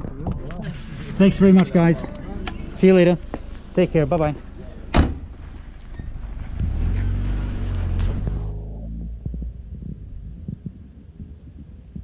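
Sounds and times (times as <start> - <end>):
soft low thumps: 5.1 - 12.0
car engine pulling away: 5.3 - 10.4.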